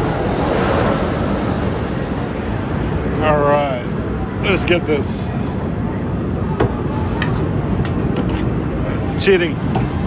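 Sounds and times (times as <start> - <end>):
busy indoor arcade din: 0.0 - 10.0.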